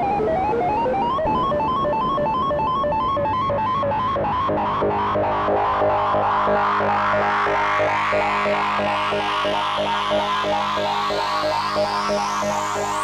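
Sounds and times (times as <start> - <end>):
bright rising synth sweep: 0.0 - 13.0
steady low drone: 0.0 - 13.0
synthesizer repeating notes: 0.0 - 13.0.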